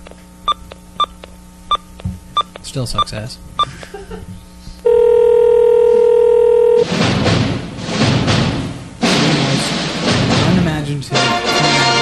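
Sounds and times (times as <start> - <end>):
telephone ringback tone: 4.9 - 6.8.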